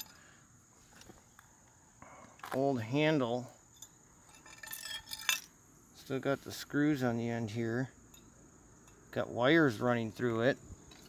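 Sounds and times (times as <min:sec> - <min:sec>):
scrap metal clinking on concrete: 0:00.0 - 0:00.3, 0:03.7 - 0:05.6, 0:08.1 - 0:09.1.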